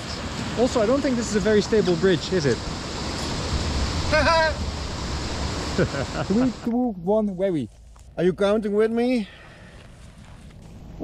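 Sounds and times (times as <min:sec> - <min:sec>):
fast-flowing stream rushing: 0:00.0 - 0:06.7
wind buffeting microphone: 0:00.0 - 0:06.7
person laughing: 0:05.7 - 0:06.7.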